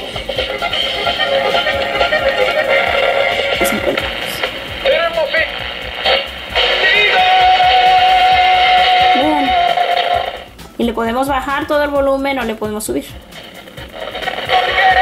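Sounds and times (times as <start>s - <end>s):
tinny radio music and voices: 0.1s - 15.0s.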